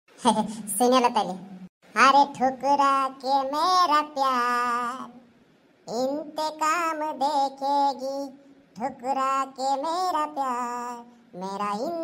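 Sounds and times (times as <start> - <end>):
person singing unaccompanied: 2.0 - 5.3, 5.9 - 12.0.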